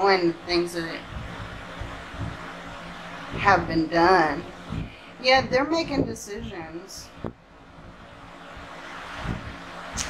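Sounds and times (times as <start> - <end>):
soft rushing noise: 0.8 - 10.0.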